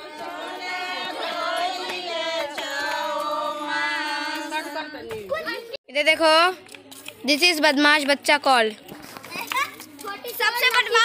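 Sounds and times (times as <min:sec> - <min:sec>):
children playing: 0:04.8 - 0:05.8, 0:06.7 - 0:11.0.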